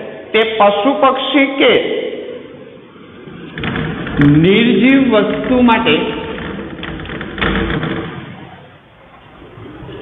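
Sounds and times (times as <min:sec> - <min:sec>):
knock: 0:05.3 - 0:08.6.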